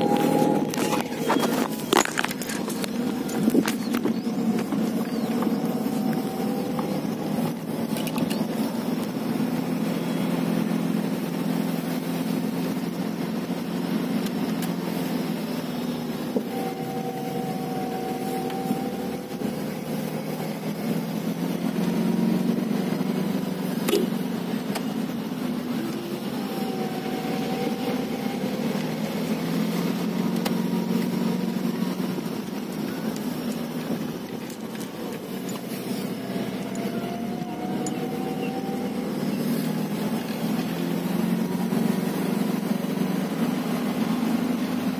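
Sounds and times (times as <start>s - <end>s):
car engine droning in cabin: 0.0s - 44.9s
high whine: 0.0s - 44.9s.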